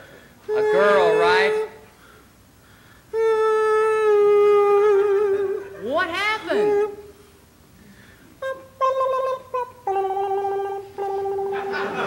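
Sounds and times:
man singing a long high note: 0:00.4 - 0:01.8, 0:03.1 - 0:05.8, 0:08.4 - 0:11.7.

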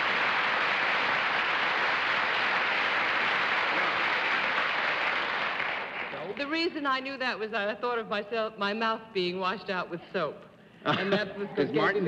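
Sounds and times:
studio audience applauding: 0:00.0 - 0:06.4.

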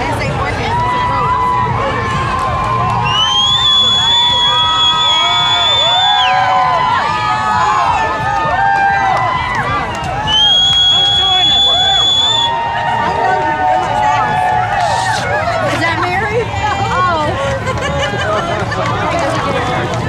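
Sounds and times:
crowd cheering and shouting: 0:00.0 - 0:20.0
high whistle blast: 0:10.3 - 0:12.6.

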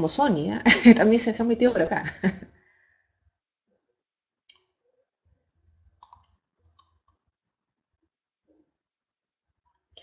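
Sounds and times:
computer mouse clicks: 0:06.0 - 0:07.2.

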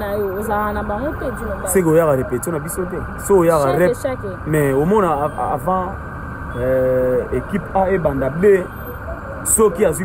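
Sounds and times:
man talking: 0:01.7 - 0:08.8, 0:09.4 - 0:10.0.

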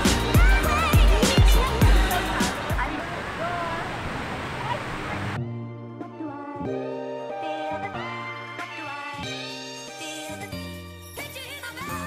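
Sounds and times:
background music: 0:00.0 - 0:02.9, 0:05.3 - 0:12.0
voices: 0:00.4 - 0:05.4.

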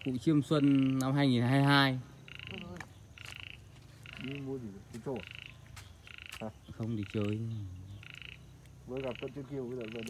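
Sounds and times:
frog rattling trills: 0:00.0 - 0:10.0.

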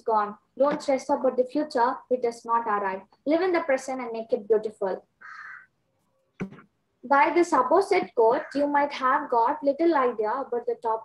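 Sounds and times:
crow cawing: 0:05.2 - 0:05.8, 0:08.2 - 0:08.7.

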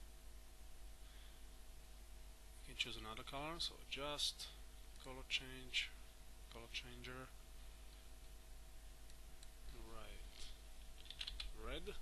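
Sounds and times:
faint steady hum: 0:00.0 - 0:12.0
computer keyboard typing: 0:11.0 - 0:11.6.

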